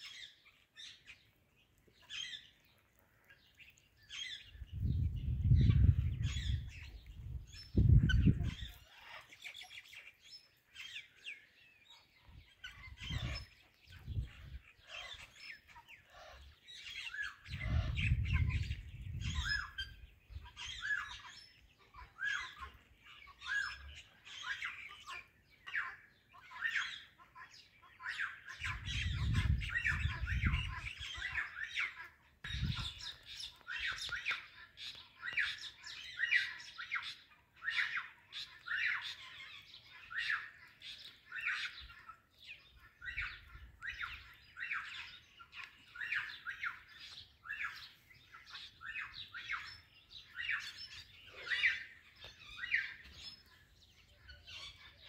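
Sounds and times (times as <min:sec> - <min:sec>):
parakeets chirping: 0:07.6 - 0:10.1, 0:12.5 - 0:13.6, 0:14.2 - 0:25.1, 0:25.7 - 0:55.0.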